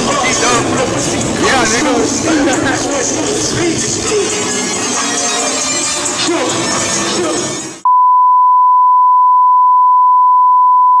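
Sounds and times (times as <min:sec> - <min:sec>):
music: 0:00.0 - 0:07.8
steady test-tone beep: 0:07.8 - 0:11.0.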